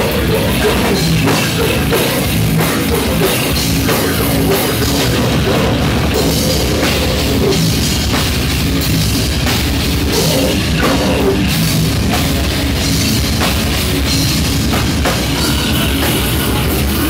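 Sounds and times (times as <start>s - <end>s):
bass guitar: 0.0s - 17.0s
distorted electric guitar: 0.0s - 17.0s
fast drumming: 0.0s - 17.0s.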